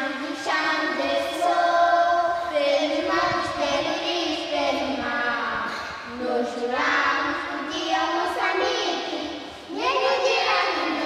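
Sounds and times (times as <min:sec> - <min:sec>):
children singing together: 0:00.0 - 0:11.0.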